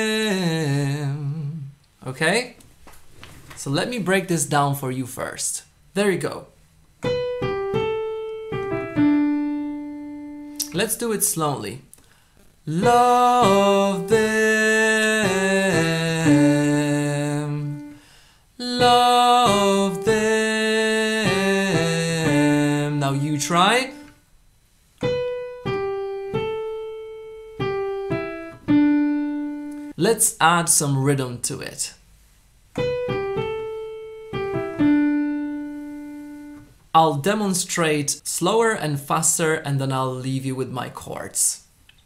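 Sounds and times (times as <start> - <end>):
piano melody single notes: 7.0 - 10.8, 25.0 - 29.9, 32.8 - 36.7
piano playing single notes: 7.0 - 10.8.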